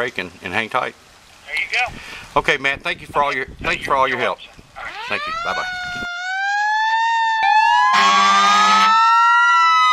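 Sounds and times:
sirens wailing: 0:04.8 - 0:09.9
low-pitched horn blast: 0:07.8 - 0:09.0.

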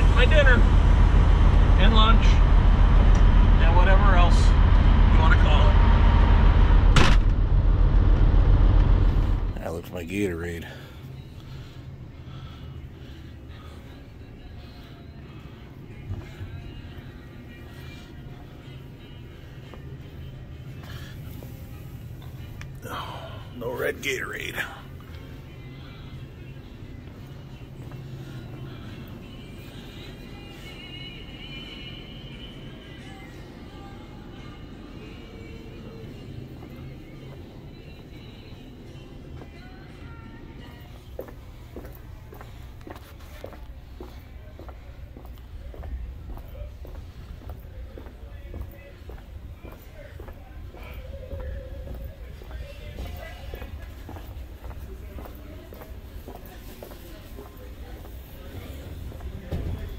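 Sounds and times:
steady low hum: 0:00.0 - 0:59.9
footsteps on tiled floor: 0:40.6 - 0:59.9
faint distant voices: 0:40.8 - 0:59.9.

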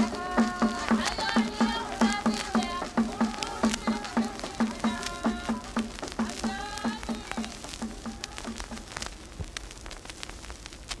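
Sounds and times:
drum beats: 0:00.0 - 0:10.6
vinyl record crackle and pops: 0:00.0 - 0:11.0.

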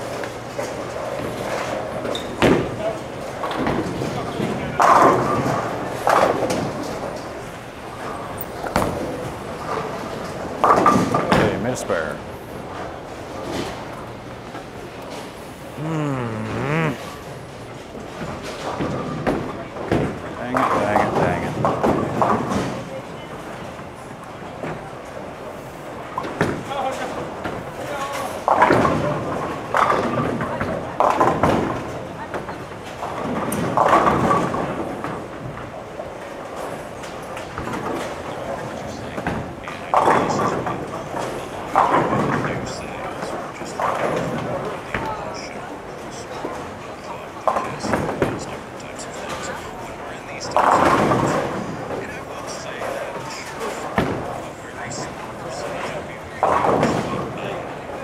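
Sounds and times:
bowling balls and pins thudding: 0:00.0 - 0:11.6
indistinct talk: 0:36.7 - 0:58.0.

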